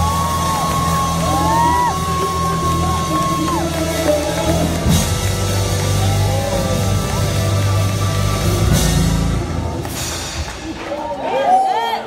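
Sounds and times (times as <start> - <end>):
rising and falling whoops: 0.0 - 3.8
steady bass line: 0.0 - 10.5
loud live band music: 0.0 - 11.8.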